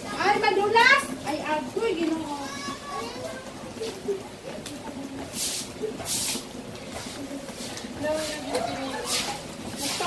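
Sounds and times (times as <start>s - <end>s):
soft indistinct talking voices: 0.0s - 10.0s.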